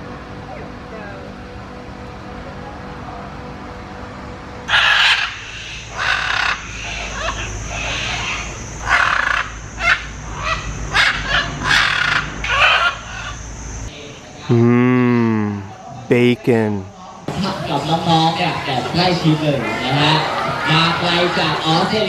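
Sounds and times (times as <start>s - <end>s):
macaws squawking: 4.7s - 13.4s.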